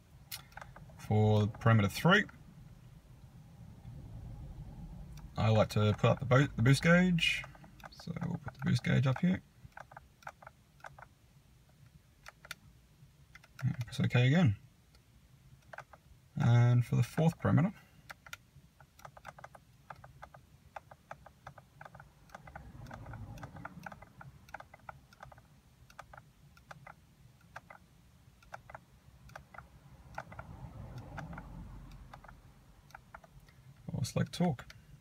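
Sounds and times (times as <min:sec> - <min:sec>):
faint low rumble: 0:00.0 - 0:35.0
control buttons clicking: 0:12.2 - 0:12.6, 0:13.3 - 0:14.1, 0:18.0 - 0:33.6.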